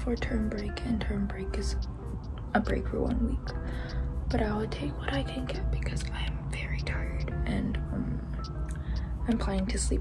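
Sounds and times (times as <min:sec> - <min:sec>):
girl talking: 0:00.0 - 0:01.8
background music: 0:00.0 - 0:10.0.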